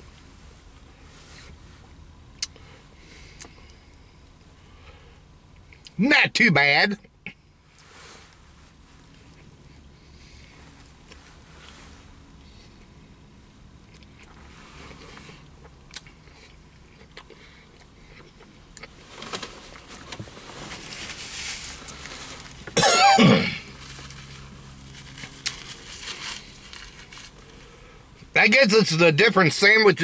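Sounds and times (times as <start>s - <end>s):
man chewing food: 2.4s - 4.5s, 13.8s - 20.3s
man coughing: 22.8s - 23.7s.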